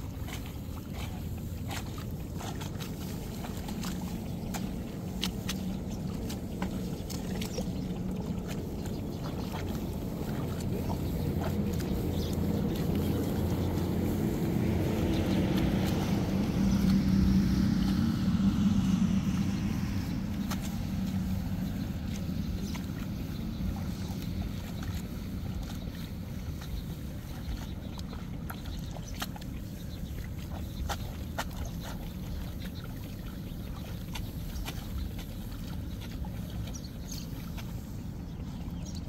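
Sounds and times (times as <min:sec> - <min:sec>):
seedlings snapping from wet mud: 0:01.0 - 0:07.9, 0:09.4 - 0:32.8
motor droning: 0:01.4 - 0:25.6.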